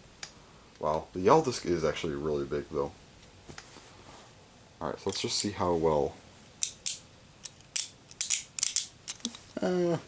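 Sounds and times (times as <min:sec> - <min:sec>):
spinning top parts clicking: 0:06.6 - 0:09.4.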